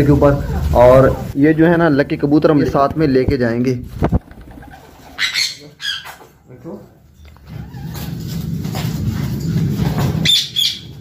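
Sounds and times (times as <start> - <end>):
birds chirping: 4.5 - 6.3, 10.3 - 11.0
sharp high squawks: 5.2 - 6.2, 10.2 - 11.0.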